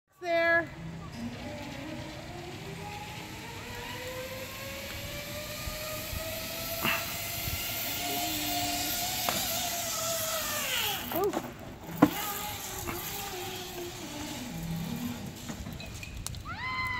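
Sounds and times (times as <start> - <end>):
zip line trolley whine: 0.6 - 16.9.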